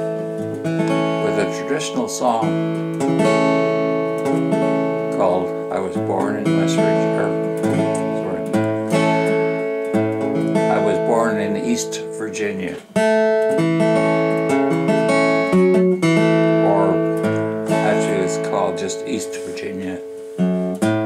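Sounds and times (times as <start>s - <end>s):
acoustic guitar playing chords: 0.0s - 21.0s.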